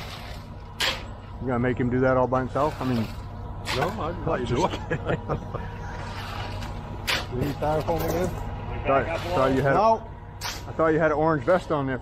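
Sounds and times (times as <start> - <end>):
truck engine humming: 0.0 - 12.0.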